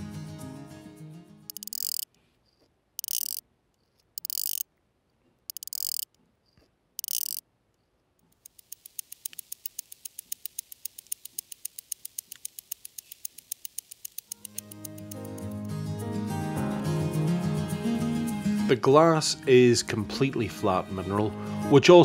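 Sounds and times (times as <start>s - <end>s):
watch ticking: 1.5s - 4.7s, 5.4s - 7.4s, 8.2s - 15.7s
watch winding ratchet clicks: 1.5s - 4.7s, 5.5s - 7.4s, 8.2s - 15.7s.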